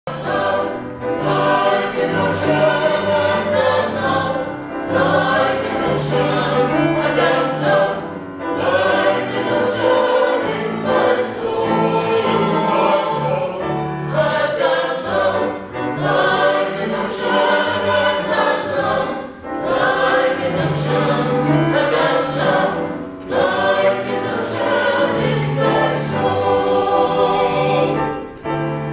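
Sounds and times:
piano: 0.0 - 28.9
choir singing a hymn: 0.1 - 28.9.

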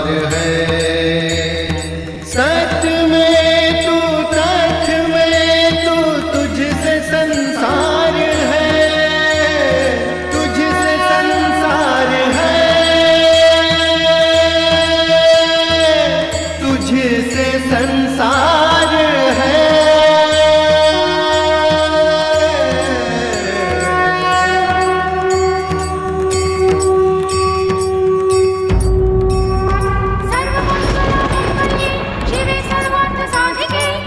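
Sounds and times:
person singing a mantra: 2.5 - 29.2.

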